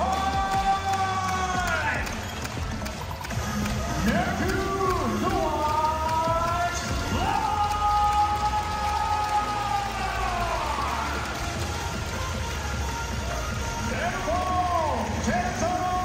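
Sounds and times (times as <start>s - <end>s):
crowd noise: 0.0s - 16.0s
loud music: 0.0s - 16.0s.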